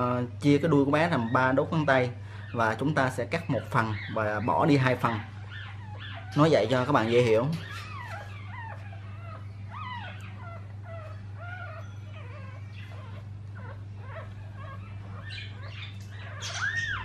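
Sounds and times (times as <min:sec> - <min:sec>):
puppy squeaking and whimpering: 0:00.0 - 0:17.0
steady low hum: 0:00.0 - 0:17.0.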